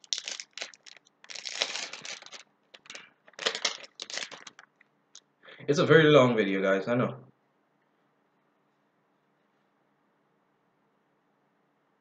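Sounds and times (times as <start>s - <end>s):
foil wrapper crinkling: 0.0s - 4.8s.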